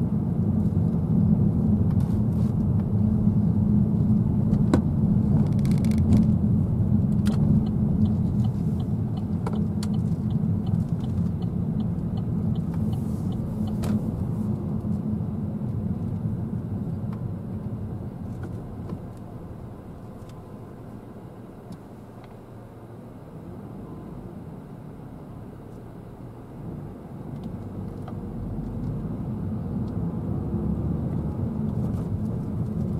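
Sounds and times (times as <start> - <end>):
car engine and tyre rumble: 0.0 - 32.9
turn indicator ticking: 7.1 - 14.2.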